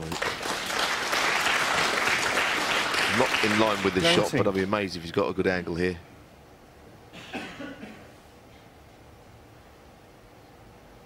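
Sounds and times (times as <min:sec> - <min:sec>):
person coughing: 0:07.1 - 0:08.2.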